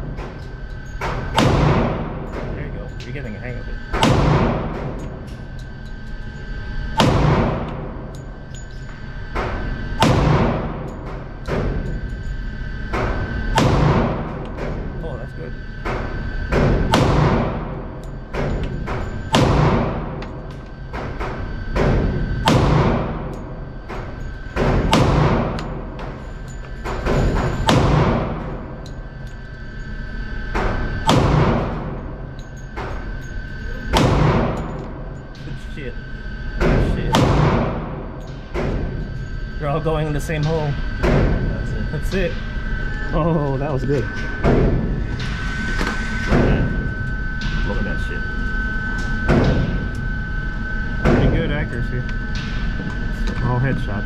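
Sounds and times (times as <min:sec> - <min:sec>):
pistol shots echoing indoors: 0:00.0 - 0:02.5, 0:03.8 - 0:11.9, 0:12.6 - 0:14.8, 0:15.8 - 0:29.4, 0:30.4 - 0:33.1, 0:33.8 - 0:35.2, 0:36.5 - 0:39.2.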